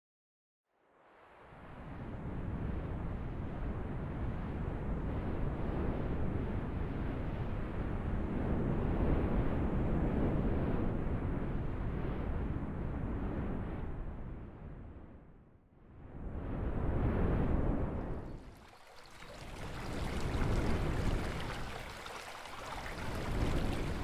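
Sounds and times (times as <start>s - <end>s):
wind blowing: 16.2s - 24.0s.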